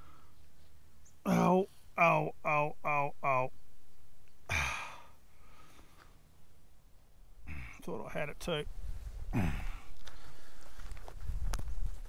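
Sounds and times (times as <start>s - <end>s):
faint breathing: 0.0s - 0.7s, 4.5s - 6.4s, 8.8s - 11.1s
man sighing in pain: 1.3s - 1.8s, 4.5s - 5.2s, 7.5s - 7.8s, 9.3s - 9.9s.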